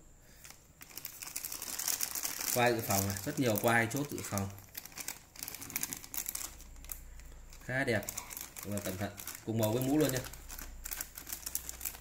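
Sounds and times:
plastic bag crinkling: 0:00.4 - 0:12.0.

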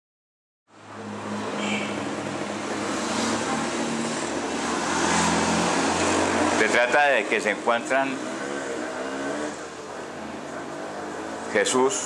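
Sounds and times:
street traffic noise: 0:00.7 - 0:12.0.

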